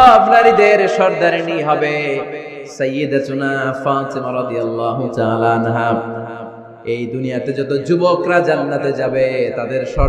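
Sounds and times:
man preaching in sing-song: 0.0 - 6.2, 6.9 - 10.0.

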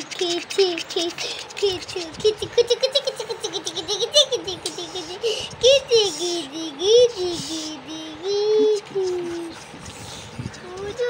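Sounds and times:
high child-like voice: 0.0 - 11.0
laugh-like sounds: 0.0 - 11.0.

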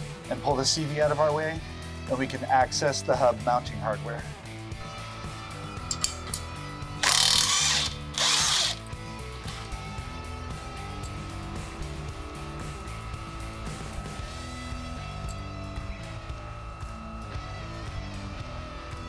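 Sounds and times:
cordless impact wrench bursts: 7.0 - 8.9.

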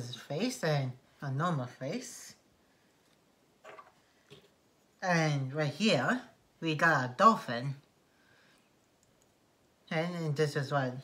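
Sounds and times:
faint plastic clicks: 8.6 - 9.4.

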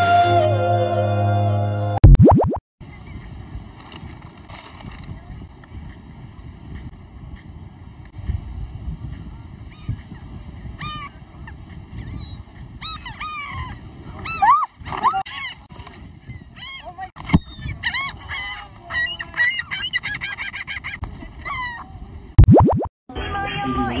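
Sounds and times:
wind rumble on microphone: 2.8 - 20.3.

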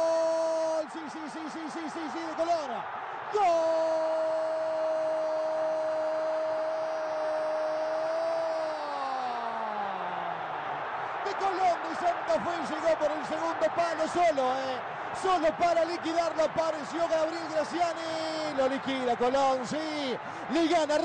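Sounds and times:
commentator's drawn-out goal cry: 11.2 - 21.0.

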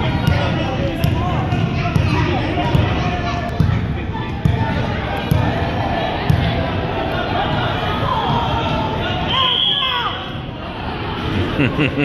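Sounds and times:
crowd chatter echoing: 0.0 - 12.0.

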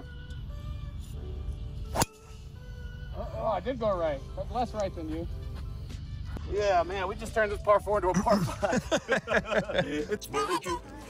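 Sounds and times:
background music: 0.0 - 11.0
golf driver striking ball: 1.9 - 2.3.

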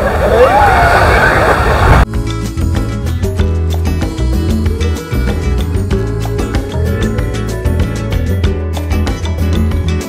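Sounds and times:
surf-like noise: 0.0 - 2.1
wind rumbling on microphone: 0.0 - 2.1.

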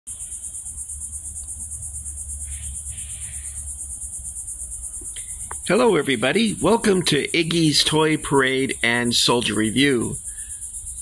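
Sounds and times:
insects chirping: 0.1 - 11.0.

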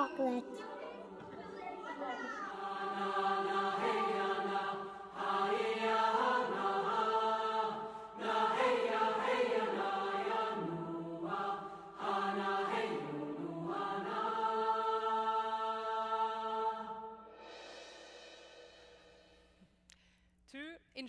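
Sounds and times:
choir singing held notes: 0.0 - 18.8.

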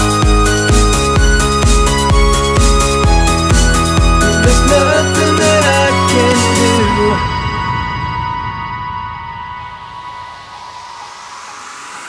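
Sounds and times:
rising white-noise sweep: 3.5 - 12.0.

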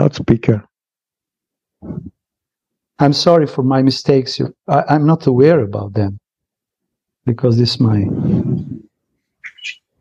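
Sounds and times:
person's breathy voice: 1.8 - 2.2, 8.0 - 8.9
faint high chirp: 9.4 - 9.9.

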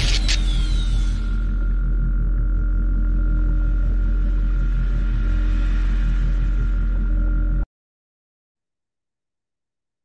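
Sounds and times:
deep electronic drone: 0.0 - 7.7.

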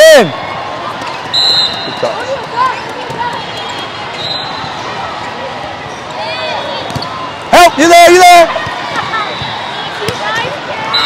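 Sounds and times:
crowd murmur in hall: 0.1 - 7.5
volleyball ball contacts: 0.9 - 4.8, 8.4 - 10.9.

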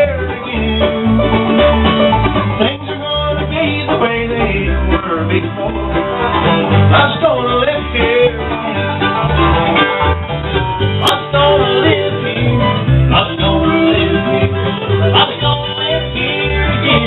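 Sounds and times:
acoustic guitar: 0.0 - 17.0
upright bass plucking: 0.0 - 17.0.

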